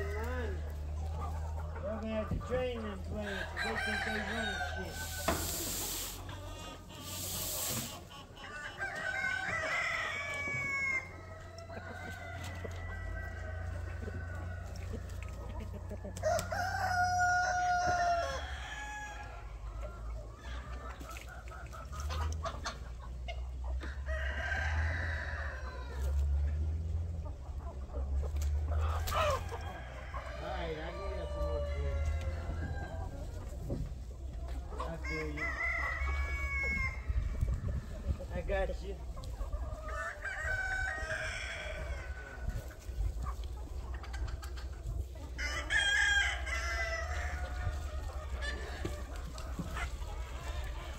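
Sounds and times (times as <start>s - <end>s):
chickens clucking: 0.0s - 50.9s
rooster crowing: 3.4s - 5.6s, 16.2s - 19.2s.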